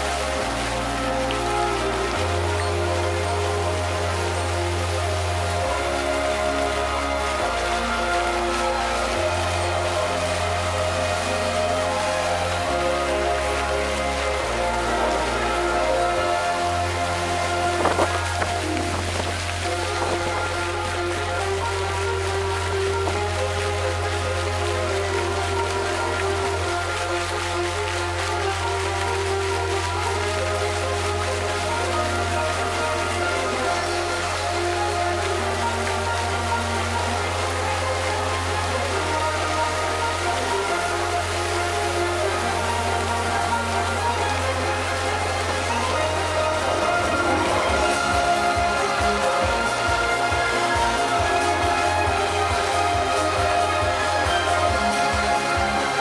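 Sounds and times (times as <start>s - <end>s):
fountain jets spraying water: 0.0s - 56.0s
music with sustained bass notes: 0.0s - 56.0s.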